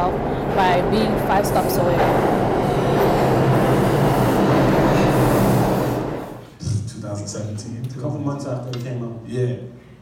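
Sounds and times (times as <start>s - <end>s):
subway train rumbling: 0.0s - 6.6s.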